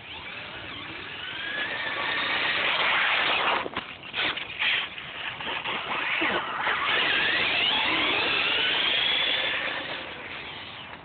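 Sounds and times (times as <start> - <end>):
rc truck electric motor whining: 0.0 - 11.0.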